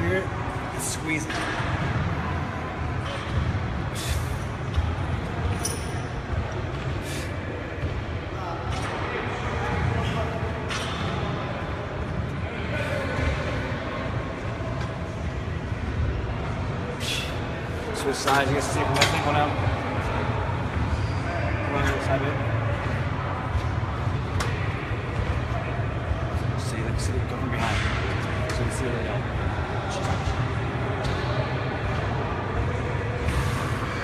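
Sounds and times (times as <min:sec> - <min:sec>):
low gym rumble: 0:00.0 - 0:34.0.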